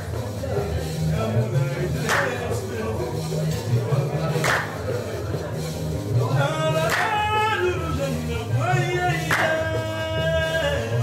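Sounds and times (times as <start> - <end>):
plucked bass lute: 0.0 - 11.0
sharp hand clap: 2.0 - 2.6, 4.4 - 5.0, 6.9 - 7.2, 9.3 - 9.6.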